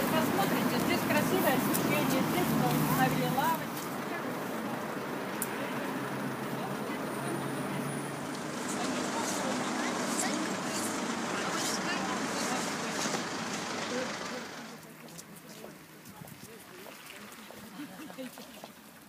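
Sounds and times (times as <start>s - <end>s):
road traffic: 0.0s - 18.1s
indistinct voices of people: 0.0s - 18.7s.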